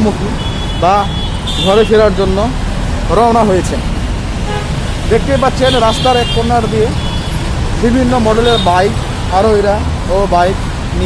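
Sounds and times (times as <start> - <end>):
person talking: 0.0 - 3.9, 5.1 - 6.9
low rumble of road traffic: 0.0 - 11.0.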